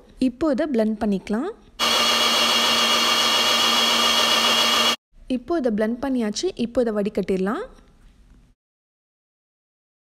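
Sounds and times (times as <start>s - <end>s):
blender motor whine: 1.8s - 5.0s.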